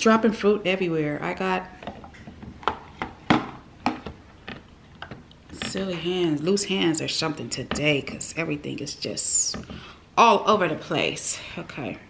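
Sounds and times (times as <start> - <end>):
fruit tapping plastic lunch box: 1.8 - 5.7.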